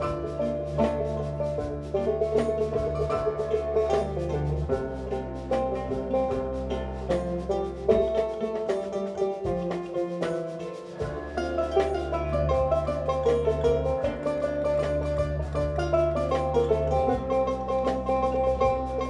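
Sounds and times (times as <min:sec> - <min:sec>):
banjo and kora playing: 0:00.0 - 0:19.0.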